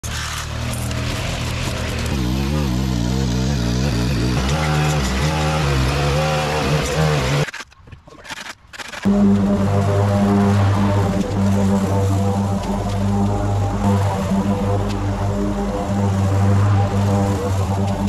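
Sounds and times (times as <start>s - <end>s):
string trimmer engine running: 0.1s - 7.4s.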